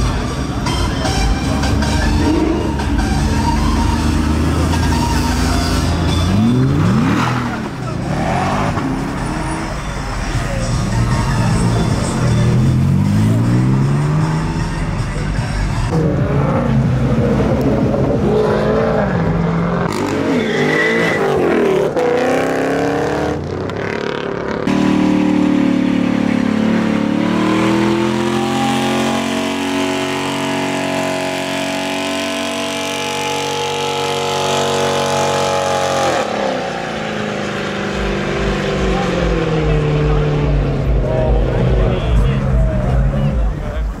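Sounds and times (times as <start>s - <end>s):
crowd voices: 0.0s - 29.4s, 36.1s - 44.0s
car engines revving hard: 0.0s - 44.0s.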